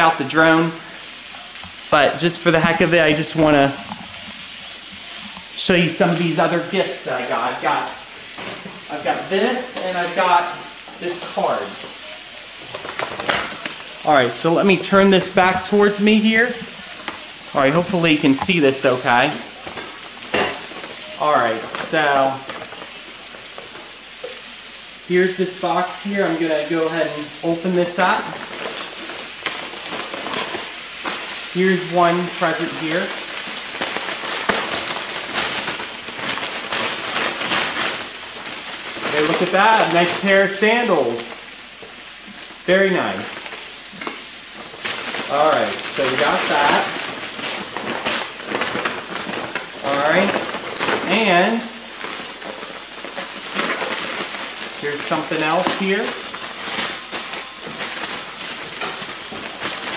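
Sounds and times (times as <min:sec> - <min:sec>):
food sizzling in a pan: 0:00.0 - 0:59.9.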